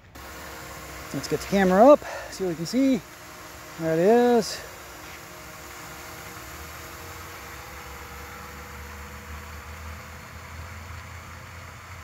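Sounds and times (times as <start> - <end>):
drone propellers humming: 0.0 - 12.0
steady hiss: 0.0 - 12.0.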